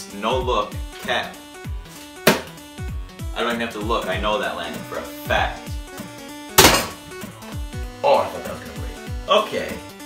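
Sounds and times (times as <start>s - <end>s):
background music with bass beat: 0.0s - 10.0s
water bottle landing with thunk: 2.2s - 2.5s, 6.6s - 7.0s.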